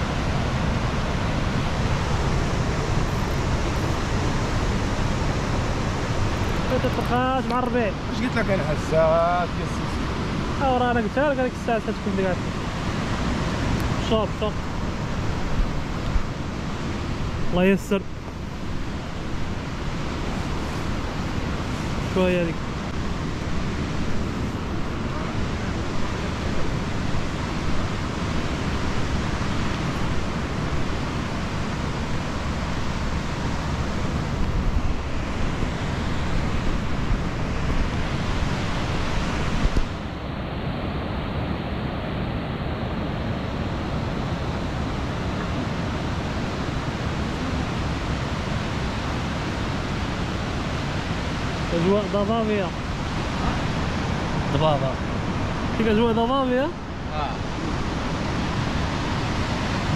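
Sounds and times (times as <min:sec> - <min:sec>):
ocean surf breaking: 0:00.0 - 0:59.9
wind on microphone: 0:00.0 - 0:59.9.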